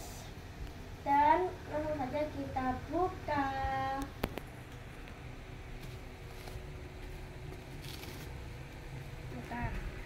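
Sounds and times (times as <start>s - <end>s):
bubble wrap rustling: 5.7s - 8.5s
soft plastic crinkles: 5.8s - 8.4s.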